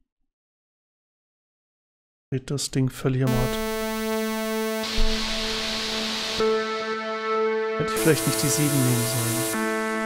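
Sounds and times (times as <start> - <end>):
synth note changing timbre: 3.3 - 10.0.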